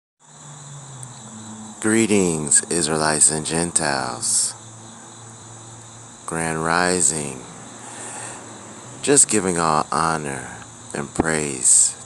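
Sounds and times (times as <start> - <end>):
crickets chirping: 0.2 - 12.0
faint low hum: 0.3 - 12.0
man talking: 1.8 - 4.6, 6.3 - 8.4, 9.0 - 12.0.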